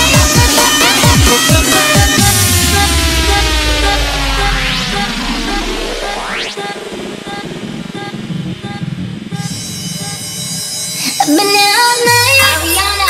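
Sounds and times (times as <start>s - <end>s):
vocal line: 0.0s - 8.9s
rising synth sweep: 0.0s - 10.7s
breakfunk dj mix: 0.0s - 13.0s.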